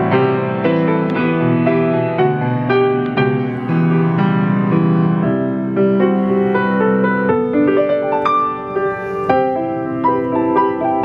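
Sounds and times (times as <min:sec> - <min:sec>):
grand piano playing chords: 0:00.0 - 0:11.0.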